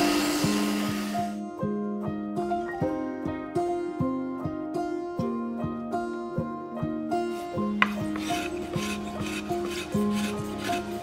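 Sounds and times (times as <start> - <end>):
spokeshave scraping wood: 7.3 - 11.0.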